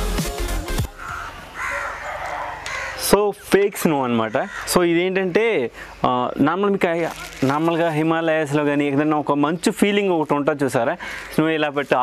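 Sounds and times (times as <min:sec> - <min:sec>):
bird giving harsh hoarse calls: 0:00.9 - 0:05.1.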